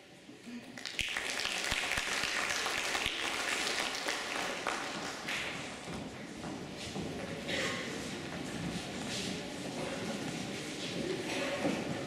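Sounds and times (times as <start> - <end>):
audience applauding: 0.7 - 5.7.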